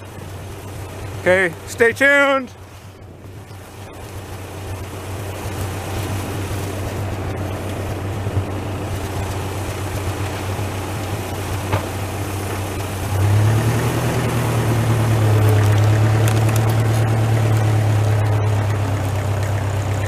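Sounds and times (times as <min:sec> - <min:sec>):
tractor engine running: 0:00.0 - 0:20.0.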